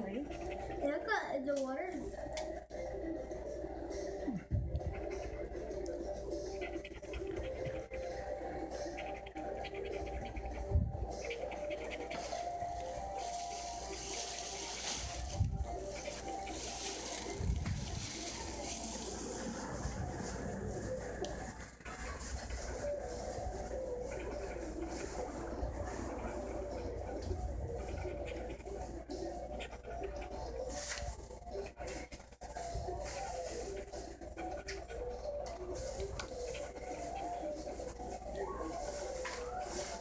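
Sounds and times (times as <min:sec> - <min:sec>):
faint music: 0:00.0 - 0:40.0
low cooing: 0:02.0 - 0:40.0.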